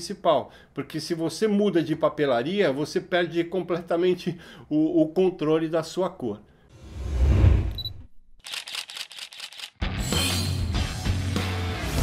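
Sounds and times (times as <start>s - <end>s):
short high beep: 7.8s - 8.0s
camera shutter clicks: 8.4s - 9.8s.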